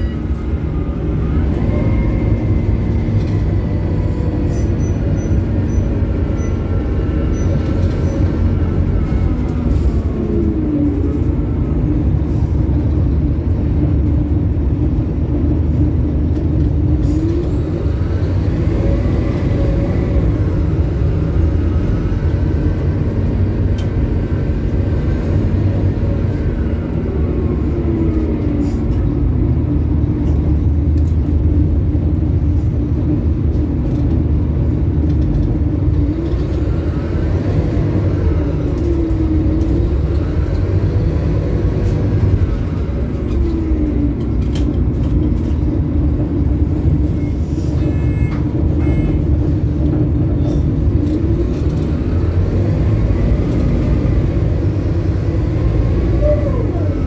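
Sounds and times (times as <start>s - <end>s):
bus diesel engine rumble: 0.0s - 57.0s
road noise: 0.0s - 57.0s.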